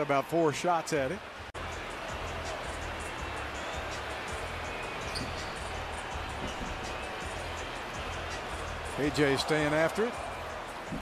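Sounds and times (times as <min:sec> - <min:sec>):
arena music with low beat: 0:01.6 - 0:11.0
basketball court sounds: 0:02.1 - 0:08.9.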